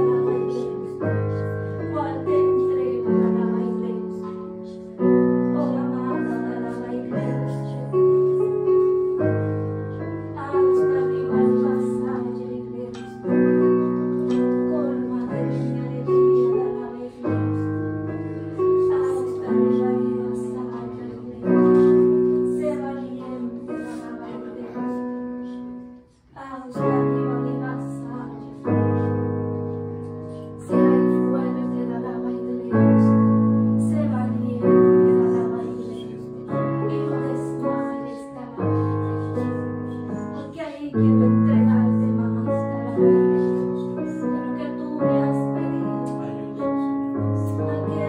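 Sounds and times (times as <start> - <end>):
soft piano chords: 0.0 - 48.0.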